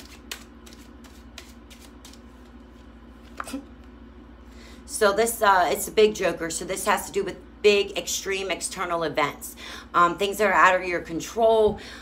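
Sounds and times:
playing cards being handled: 0.0s - 3.9s
steady low hum: 0.0s - 12.0s.

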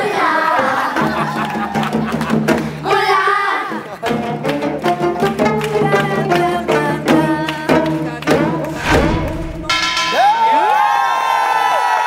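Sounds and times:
shouted cheers: 0.2s - 2.2s, 10.0s - 12.0s.

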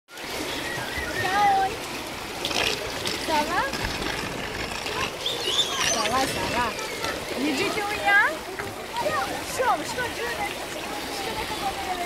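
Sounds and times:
water splashing in pool: 0.1s - 12.0s
children calling: 3.8s - 12.0s.

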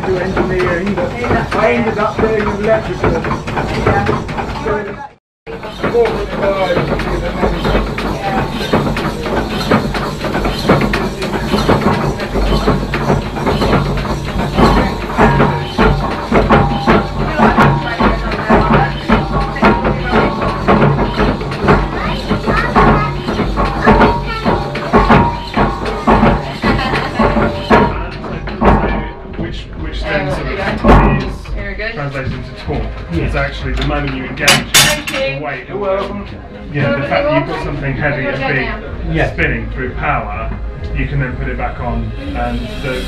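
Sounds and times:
people talking: 0.0s - 43.0s
steam engine clattering: 0.0s - 43.0s
music: 5.5s - 43.0s.

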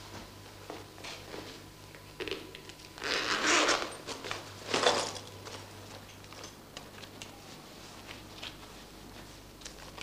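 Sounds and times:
zip pulled open: 3.0s - 4.0s.

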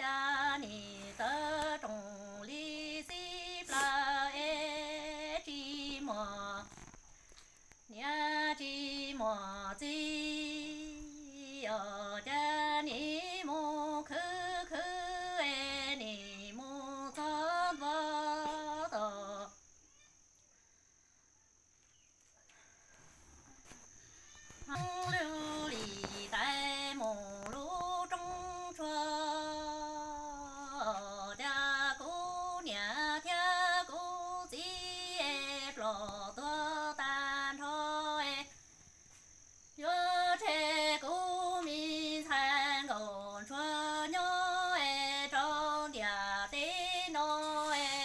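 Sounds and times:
woman singing unaccompanied: 0.0s - 7.0s, 7.8s - 19.7s, 24.5s - 38.7s, 39.4s - 48.0s.

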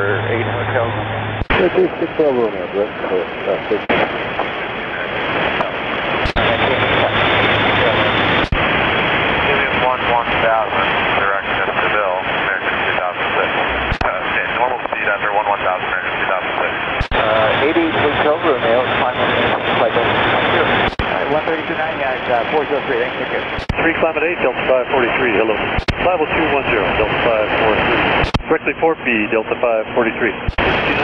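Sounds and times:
faint garbled radio voices: 0.0s - 8.8s, 9.4s - 31.0s
radio static: 0.0s - 31.0s
radio transmission clicks: 5.6s - 6.5s, 8.3s - 8.6s, 13.9s - 14.2s, 16.9s - 17.2s, 20.7s - 21.1s, 23.5s - 23.8s, 25.7s - 26.0s, 28.2s - 28.5s, 30.4s - 30.8s.

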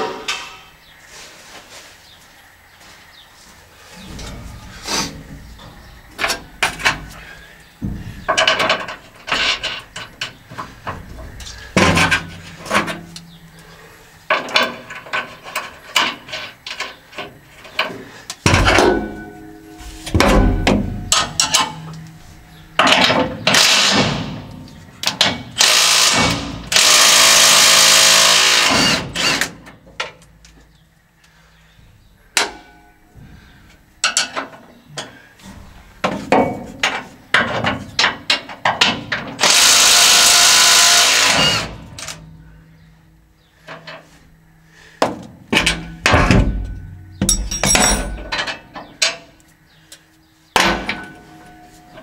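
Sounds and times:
cordless drill running: 25.6s - 29.4s, 39.4s - 41.7s
hand tools clinking on metal: 47.2s - 49.3s.

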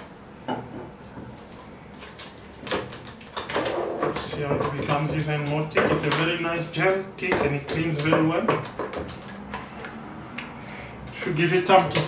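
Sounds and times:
man talking: 4.2s - 8.6s, 11.1s - 12.0s.

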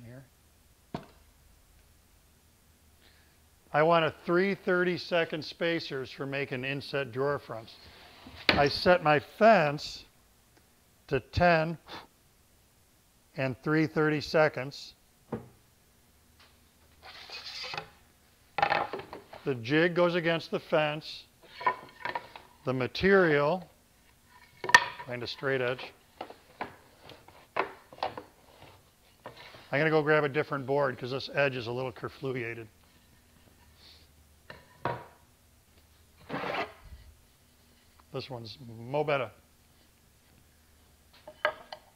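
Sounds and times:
wood scraping on wood: 17.0s - 17.9s, 36.2s - 36.8s.

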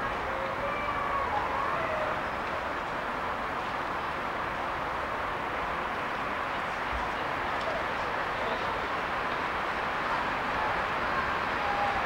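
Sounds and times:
distant freight train: 0.0s - 12.0s.

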